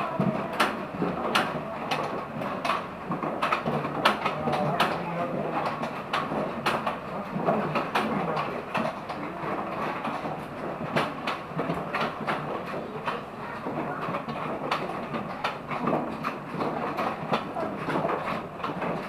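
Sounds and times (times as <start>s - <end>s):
coaster wheels rumbling on rails: 0.0s - 19.0s
track clicks and clacks: 0.0s - 19.0s.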